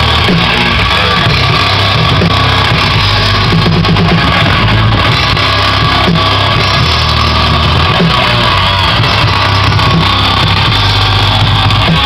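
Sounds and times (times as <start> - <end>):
metal-punk band playing live: 0.0 - 12.0.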